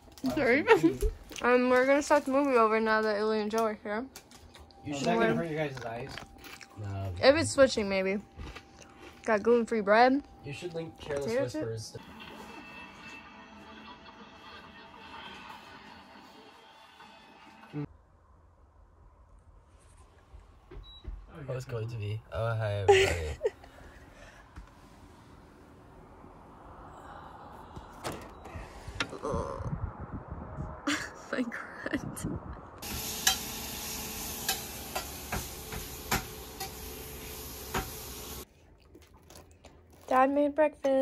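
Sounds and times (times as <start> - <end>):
faint low rumble: 23.6 - 32.8
food sizzling in a frying pan: 32.8 - 38.4.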